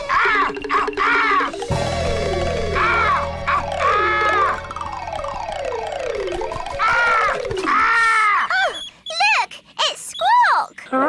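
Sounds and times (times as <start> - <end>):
cartoon bird squawking: 0.0 - 1.6.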